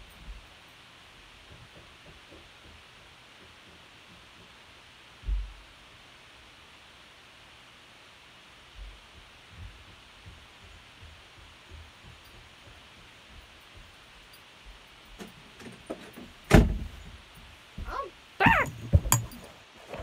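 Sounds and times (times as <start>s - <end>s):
faint steady hiss: 0.0s - 20.0s
knocks and thumps: 15.9s - 20.0s.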